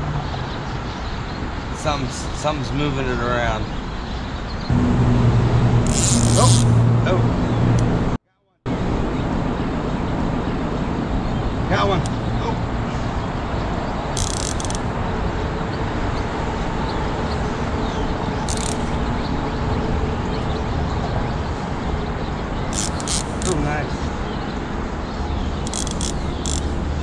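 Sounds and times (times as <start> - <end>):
traffic rumble: 0.0 - 27.0
fishing reel clicking: 5.9 - 6.8, 14.2 - 14.8, 18.5 - 18.9, 22.7 - 23.6, 25.6 - 26.7.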